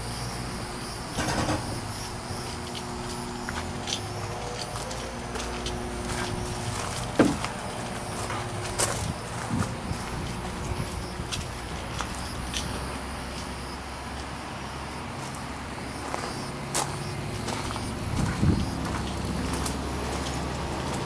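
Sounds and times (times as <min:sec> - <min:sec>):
footsteps outdoors: 0:00.0 - 0:21.0
steady mechanical hum: 0:00.0 - 0:21.0.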